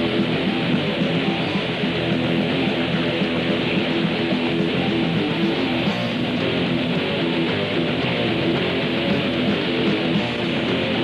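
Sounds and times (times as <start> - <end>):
bass guitar: 0.0 - 11.0
fast electric guitar riffing: 0.0 - 11.0.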